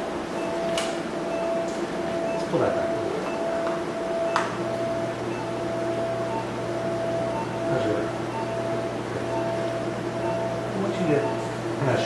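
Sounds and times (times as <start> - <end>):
electronic hum and tone: 0.0 - 12.0
patient monitor beeps: 0.4 - 11.6.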